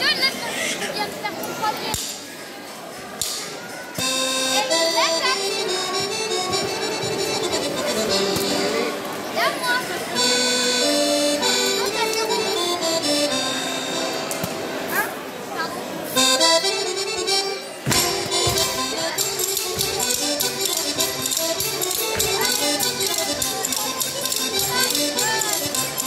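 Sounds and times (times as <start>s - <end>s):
sharp rhythmic beats: 4.0s - 9.0s, 16.2s - 26.0s
accordion folk dance tune: 4.0s - 26.0s.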